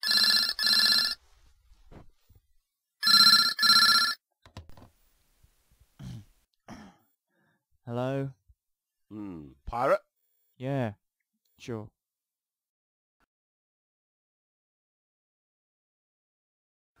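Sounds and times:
telephone double ringing: 0.0s - 1.2s, 3.0s - 4.2s.

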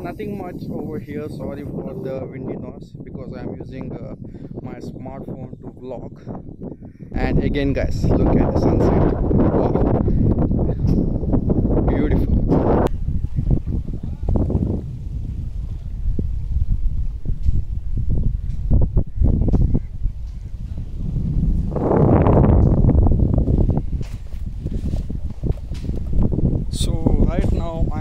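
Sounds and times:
wind buffeting microphone: 0.0s - 28.0s.

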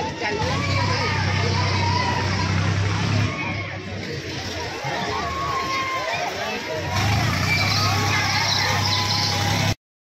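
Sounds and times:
people chattering: 0.0s - 9.8s.

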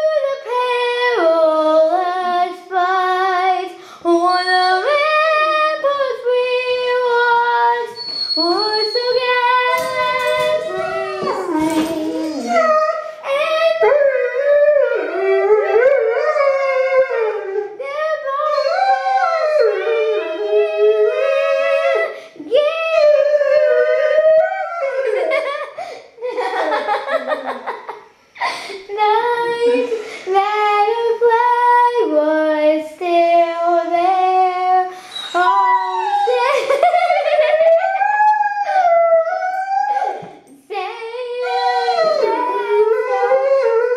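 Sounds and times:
girl singing long notes: 0.0s - 17.2s, 28.8s - 36.5s, 39.8s - 43.9s
dog howling: 8.4s - 13.0s, 13.8s - 22.2s, 22.9s - 25.4s, 35.1s - 40.4s, 41.4s - 43.9s.

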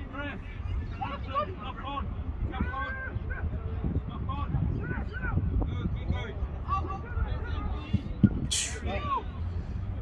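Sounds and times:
players calling and shouting: 0.0s - 10.0s
wind rumble on microphone: 0.0s - 10.0s
brief hiss: 8.5s - 8.8s.

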